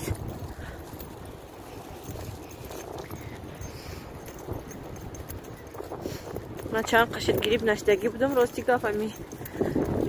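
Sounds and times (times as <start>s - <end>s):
microphone handling and wind noise: 0.0s - 10.0s.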